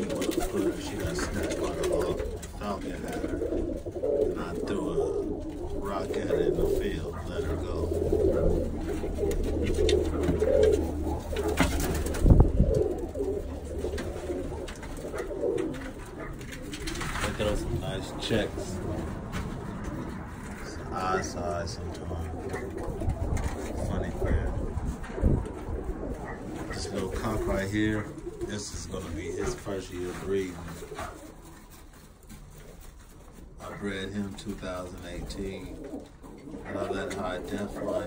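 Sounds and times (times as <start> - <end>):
pigeons cooing: 0.0 - 38.0.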